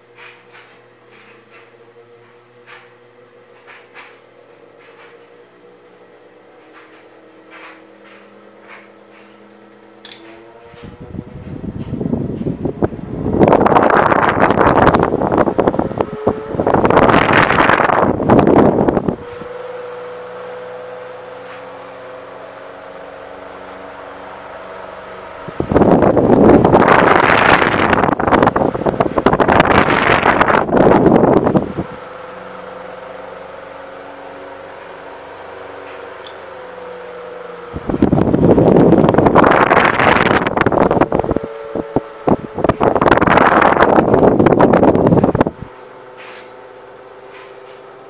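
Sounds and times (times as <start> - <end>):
desk fan motor hum and whine: 0.0 - 48.0
wind rushing on microphone: 10.7 - 19.6, 25.4 - 32.0, 37.7 - 45.7.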